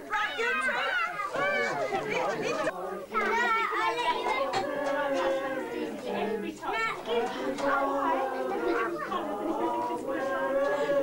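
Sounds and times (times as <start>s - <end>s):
children chattering: 0.0s - 11.0s
children singing held notes: 0.0s - 11.0s.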